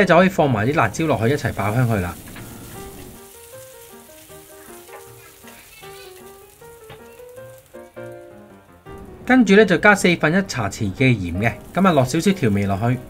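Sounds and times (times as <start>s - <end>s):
garlic sizzling in oil: 0.0s - 9.2s, 10.5s - 13.0s
soft melodic background music: 0.6s - 13.0s.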